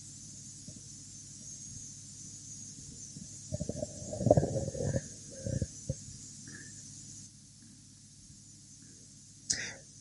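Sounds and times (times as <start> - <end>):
person making creaky sound: 3.5 - 6.0.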